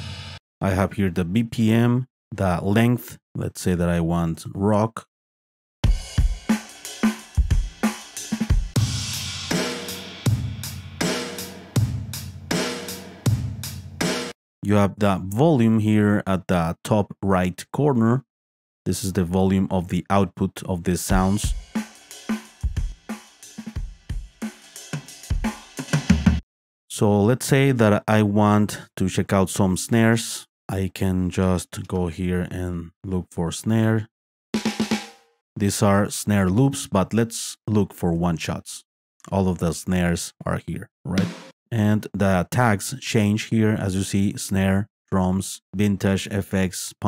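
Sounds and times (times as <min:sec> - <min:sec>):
rock drum kit beat: 0:00.0 - 0:00.4, 0:05.8 - 0:14.4, 0:21.1 - 0:26.4, 0:34.6 - 0:35.2, 0:41.1 - 0:41.6.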